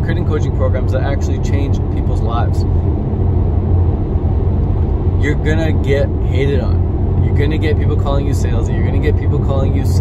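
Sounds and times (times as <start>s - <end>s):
road and tyre rumble in car: 0.0s - 10.0s.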